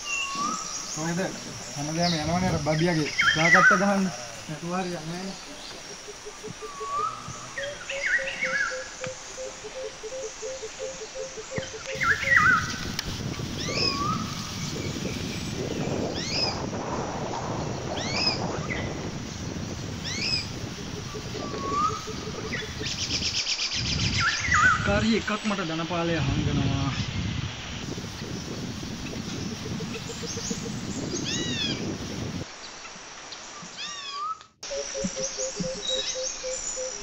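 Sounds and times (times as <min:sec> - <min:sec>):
bird chirps: 0:05.3 - 0:12.8, 0:33.7 - 0:37.0
bird sweeping high call: 0:05.4 - 0:12.8, 0:20.0 - 0:24.8.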